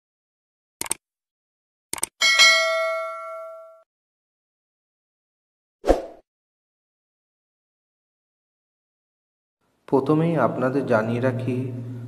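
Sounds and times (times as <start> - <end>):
bell ding: 2.2 - 3.9.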